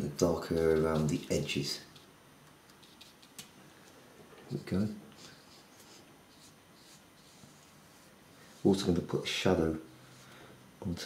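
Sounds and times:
paintbrush swishing on paper: 5.2s - 9.1s.

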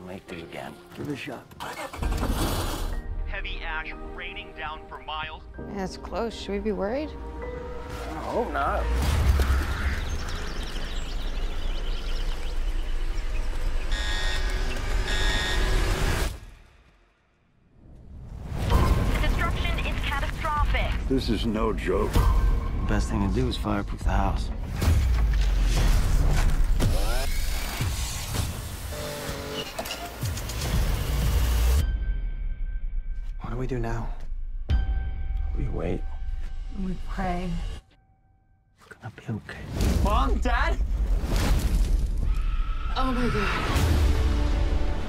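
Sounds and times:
dense trailer music: 0.1s - 29.0s, 30.1s - 38.7s, 39.6s - 45.0s.

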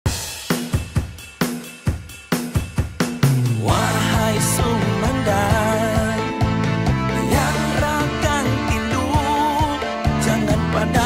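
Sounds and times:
drum kit beat: 0.0s - 11.0s.

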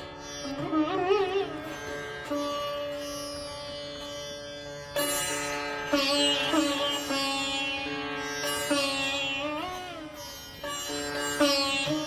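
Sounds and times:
sitar playing: 0.0s - 12.0s.

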